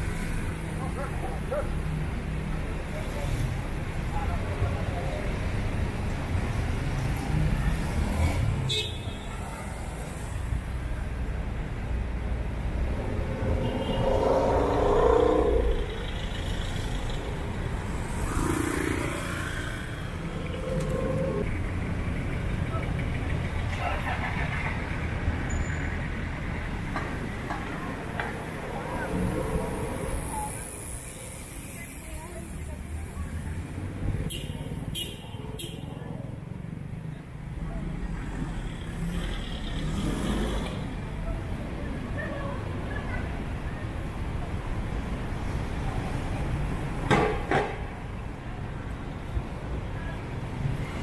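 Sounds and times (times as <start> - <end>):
cars passing: 0.0 - 51.0
voices of passersby: 0.0 - 51.0.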